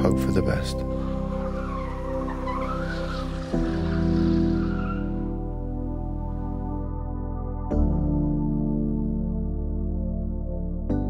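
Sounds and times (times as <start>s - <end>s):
background music sustained chords: 0.0s - 11.0s
car tires squealing and skidding: 0.9s - 5.6s.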